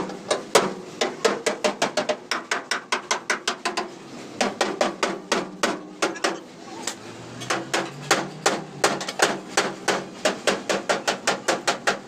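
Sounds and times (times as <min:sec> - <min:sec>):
hammer striking metal: 0:07.4 - 0:12.0.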